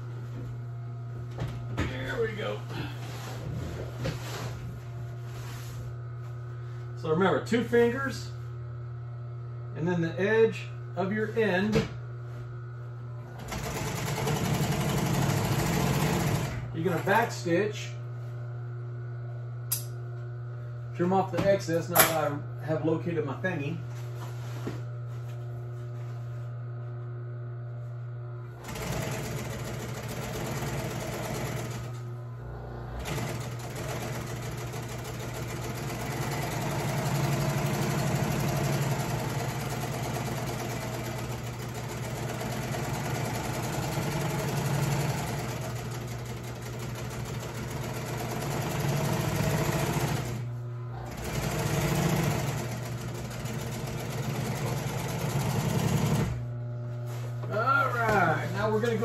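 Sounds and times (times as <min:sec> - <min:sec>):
motor hum: 0:00.0 - 0:59.0
sewing machine stitching: 0:13.4 - 0:17.2, 0:28.6 - 0:32.0, 0:33.0 - 0:56.4.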